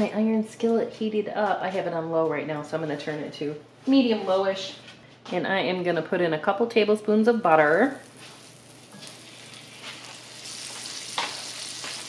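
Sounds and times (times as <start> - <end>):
butter sizzling in skillet: 7.7 - 12.0
spatula pushing in pan: 8.3 - 12.0.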